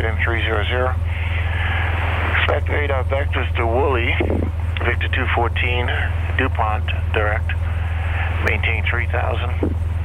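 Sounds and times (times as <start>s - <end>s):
radio channel hiss: 0.0s - 9.8s
aircraft engine idling: 0.0s - 10.0s.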